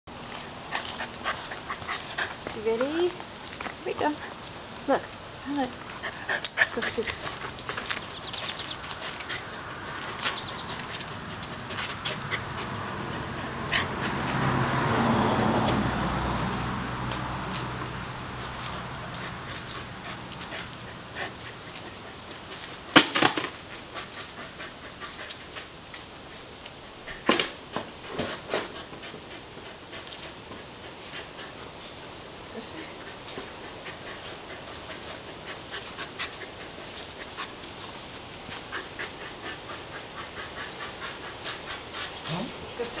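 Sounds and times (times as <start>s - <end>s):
dog panting and whimpering: 0.5s - 3.2s, 5.5s - 22.8s, 23.7s - 25.7s, 26.3s - 43.0s.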